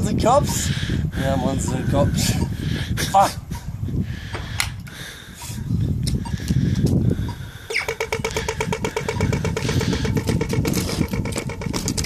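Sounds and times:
crossing signal rapid ticking: 0:07.2 - 0:12.0.

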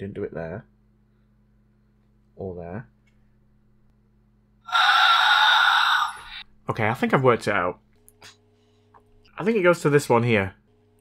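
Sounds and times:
faint steady hum: 0:00.0 - 0:11.0
person gasping: 0:04.7 - 0:06.4.

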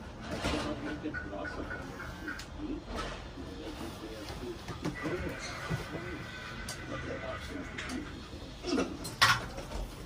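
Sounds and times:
faint muffled voices: 0:00.0 - 0:10.0.

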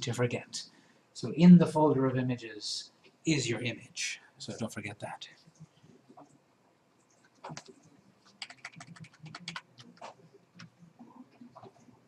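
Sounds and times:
computer keyboard clicks: 0:08.4 - 0:10.7.

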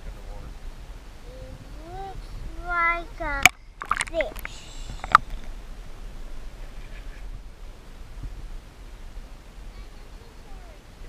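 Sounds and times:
young child vocalizing: 0:01.2 - 0:05.2.

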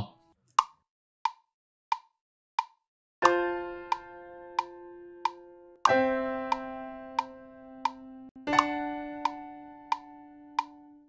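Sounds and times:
metronome clicks: 0:00.6 - 0:11.0
piano chords: 0:03.2 - 0:11.0.

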